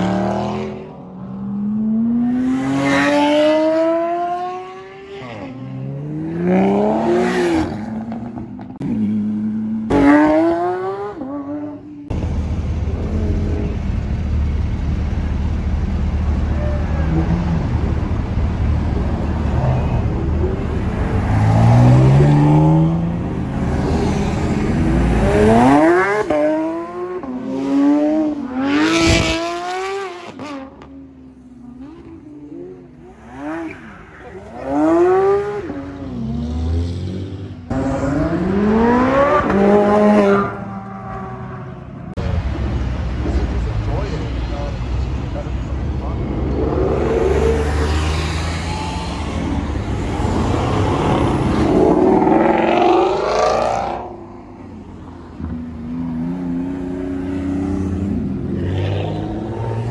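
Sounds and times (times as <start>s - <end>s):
cars accelerating hard: 0.0s - 11.9s, 17.0s - 59.9s
engine revving: 19.2s - 30.8s, 34.3s - 41.8s, 46.0s - 54.3s.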